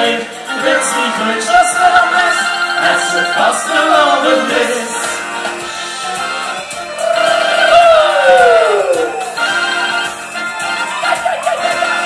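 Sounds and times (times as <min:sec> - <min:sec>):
band playing: 0:00.0 - 0:12.0
person singing long high note: 0:06.8 - 0:09.8.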